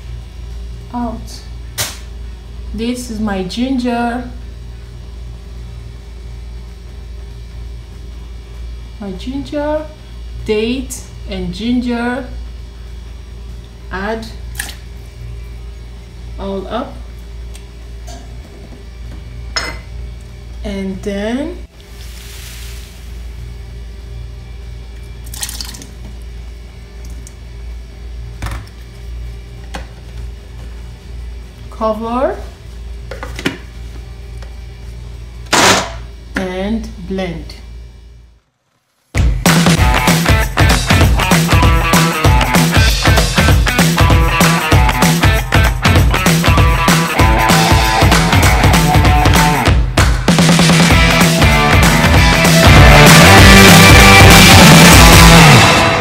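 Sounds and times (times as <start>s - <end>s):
low hum and rumble: 0.0s - 56.0s
kitchenware clinking: 19.6s - 19.9s.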